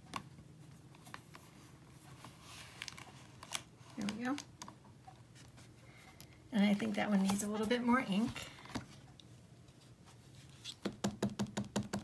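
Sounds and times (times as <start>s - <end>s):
soft rustle: 0.6s - 4.3s, 5.3s - 10.8s.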